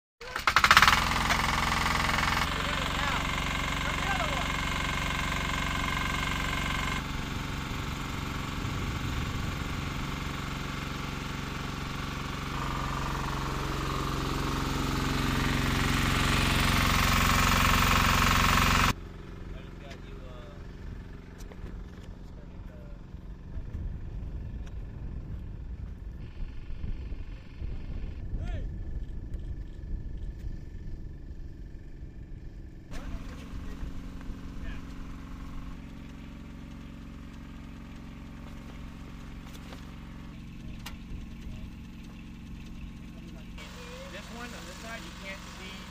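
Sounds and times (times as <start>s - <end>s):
fuel pump engine running: 0.2s - 45.9s
voices: 2.4s - 4.7s, 40.1s - 45.9s.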